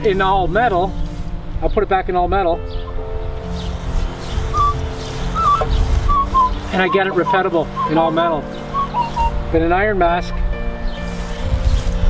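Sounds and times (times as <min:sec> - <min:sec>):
background music: 0:00.0 - 0:12.0
metal detector high chirp: 0:04.5 - 0:09.3.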